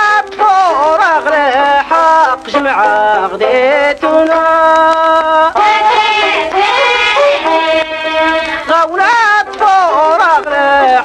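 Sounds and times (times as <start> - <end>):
fiddle accompaniment: 0.0 - 11.0
person singing: 0.0 - 11.0.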